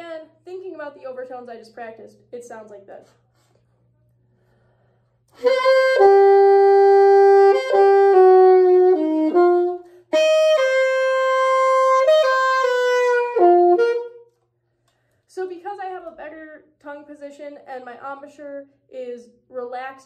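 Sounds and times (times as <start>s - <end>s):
saxophone playing slow melody: 5.3s - 14.3s.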